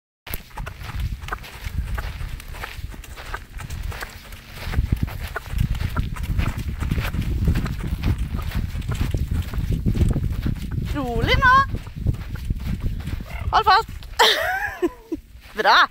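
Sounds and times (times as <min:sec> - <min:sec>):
hooves thudding on sand: 0:00.3 - 0:15.9
steady low rumble: 0:00.4 - 0:15.7.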